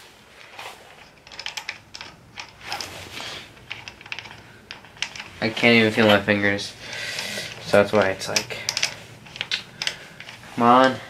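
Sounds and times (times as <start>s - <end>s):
socket wrench clicking: 7.2s - 10.4s.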